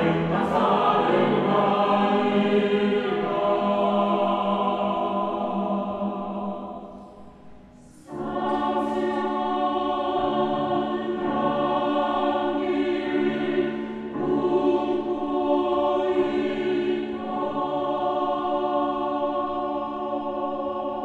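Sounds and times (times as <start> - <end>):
mixed choir singing chords: 0.0 - 21.0.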